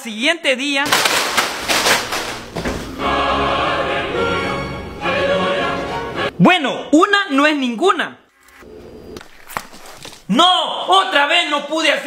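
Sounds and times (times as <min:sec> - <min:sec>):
choir singing held chord: 0:02.6 - 0:06.4.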